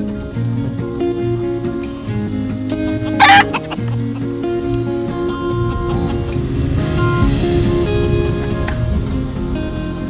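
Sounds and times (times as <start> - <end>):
acoustic guitar music: 0.0 - 10.0
fowl calling: 2.7 - 6.4.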